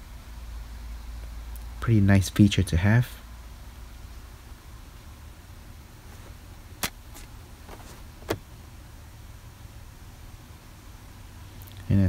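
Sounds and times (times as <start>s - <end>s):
low steady background hum: 0.0s - 12.0s
sunshade clicks: 6.1s - 8.4s.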